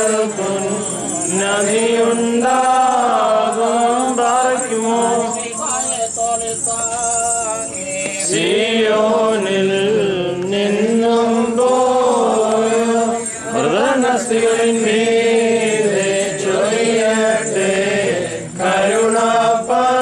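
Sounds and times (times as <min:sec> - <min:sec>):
voices chanting a hymn in unison: 0:00.0 - 0:20.0.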